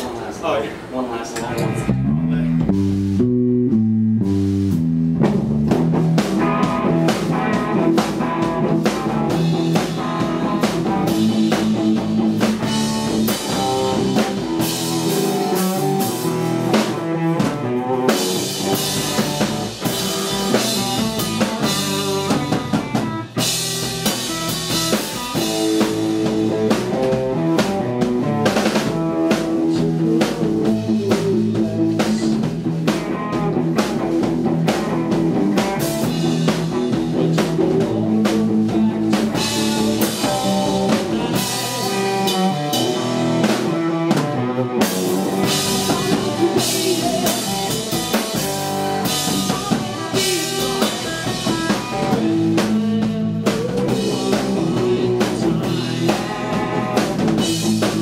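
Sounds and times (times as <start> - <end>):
rock drum kit: 0.8 - 58.0
electric guitar riff: 1.5 - 58.0.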